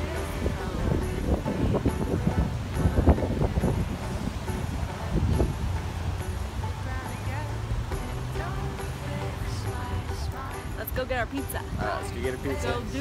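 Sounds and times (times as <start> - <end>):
background music: 0.0 - 13.0
wind buffeting microphone: 0.0 - 13.0.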